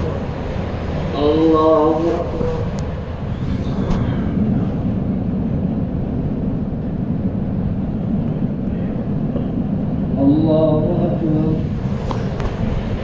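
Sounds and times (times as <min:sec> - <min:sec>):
ceiling fan whirring: 0:00.0 - 0:13.0.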